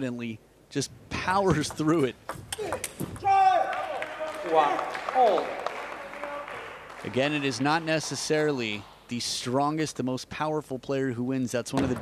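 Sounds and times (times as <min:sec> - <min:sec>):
crowd applause: 0:03.6 - 0:09.0.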